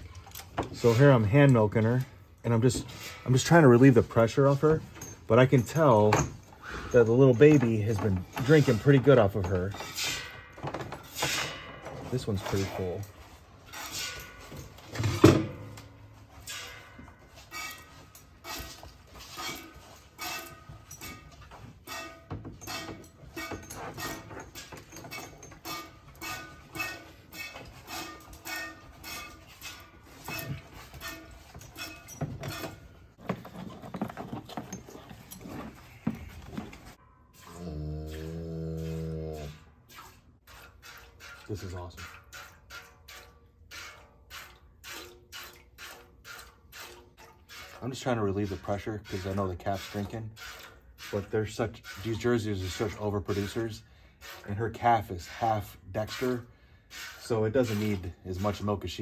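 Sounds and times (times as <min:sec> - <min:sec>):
cow mooing: 0:37.4 - 0:39.7
milk squirting into metal pail: 0:39.8 - 0:55.3.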